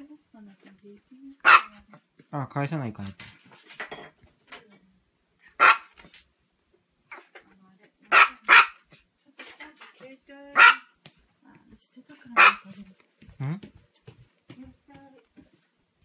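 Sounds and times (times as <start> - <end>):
small dog yapping: 1.4 - 1.8, 5.6 - 6.1, 8.1 - 8.9, 10.6 - 10.8, 12.4 - 12.6.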